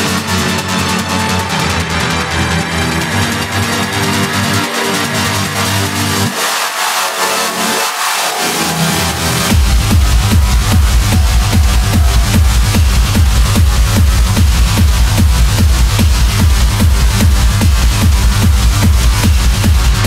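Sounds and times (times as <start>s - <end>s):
techno music over sound system: 0.0s - 20.0s
kick-drum beat: 9.5s - 20.0s.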